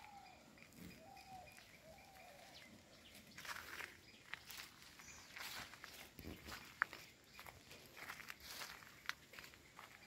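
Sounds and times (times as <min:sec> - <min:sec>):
footsteps crunching on dry twigs: 0:00.0 - 0:10.0.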